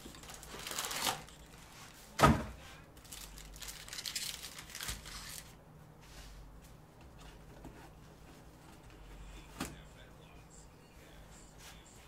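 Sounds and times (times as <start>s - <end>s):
foil packs crinkling: 0.0s - 1.4s, 3.0s - 5.6s.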